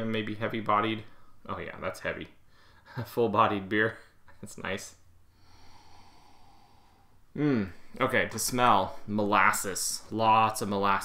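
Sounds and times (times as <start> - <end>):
man sniffing: 5.4 - 7.8.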